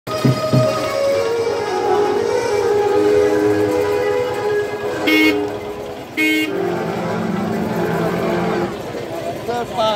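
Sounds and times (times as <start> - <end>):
drum beats: 0.1 - 1.4
band holding long notes: 0.1 - 9.9.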